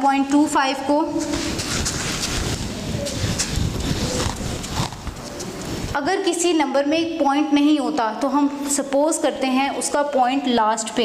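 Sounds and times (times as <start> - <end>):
duster scrubbing a whiteboard: 1.1 - 5.6.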